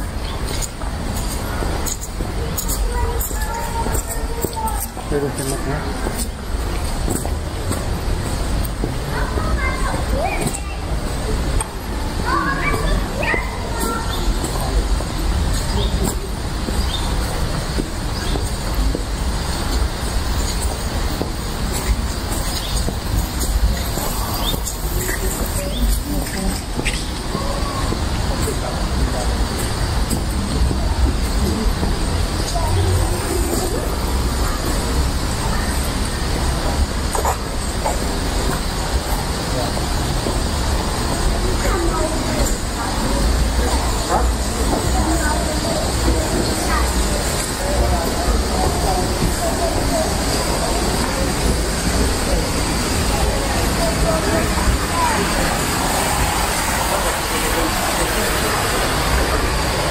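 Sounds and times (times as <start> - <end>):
indistinct voices: 0.0 - 59.9.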